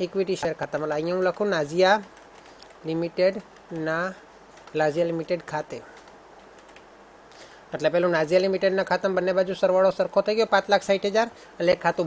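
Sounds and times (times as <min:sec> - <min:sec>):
faint typing on keyboard: 0:00.0 - 0:07.6
person speaking: 0:00.0 - 0:12.0.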